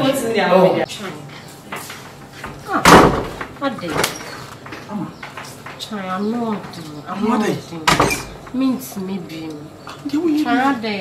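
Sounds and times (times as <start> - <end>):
door slamming: 2.7 - 4.2, 7.9 - 8.4.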